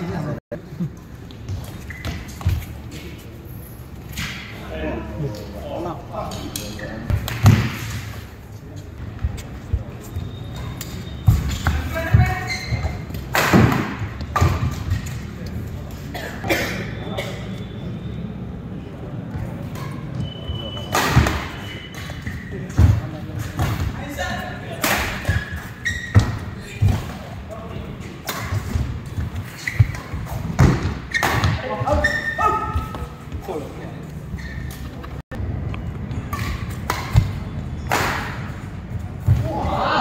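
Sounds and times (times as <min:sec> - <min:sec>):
shoes squeaking on court: 0:01.1 - 0:04.2, 0:07.8 - 0:13.3, 0:19.2 - 0:24.1, 0:25.1 - 0:37.9
racket hitting shuttlecock: 0:36.2 - 0:38.5.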